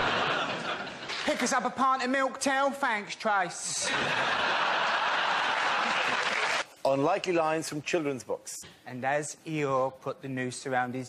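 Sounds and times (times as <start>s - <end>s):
audience laughing: 0.0s - 1.4s, 3.8s - 6.6s
audience applauding: 4.4s - 6.7s.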